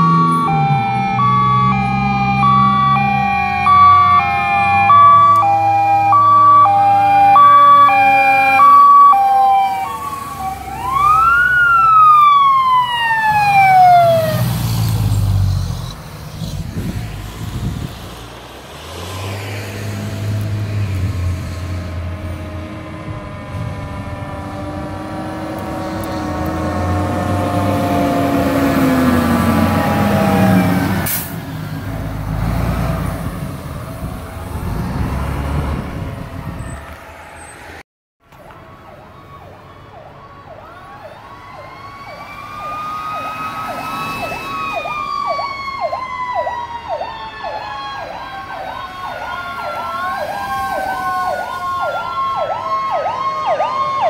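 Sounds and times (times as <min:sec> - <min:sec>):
electronic hi-lo siren: 0:00.0 - 0:16.0
wailing siren: 0:00.0 - 0:16.0, 0:19.1 - 0:31.3, 0:38.3 - 0:54.0
fire truck engine passing: 0:00.0 - 0:54.0.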